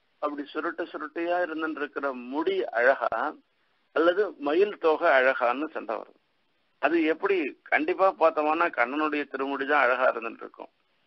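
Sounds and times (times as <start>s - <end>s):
man talking: 0.2s - 6.1s, 6.8s - 10.7s.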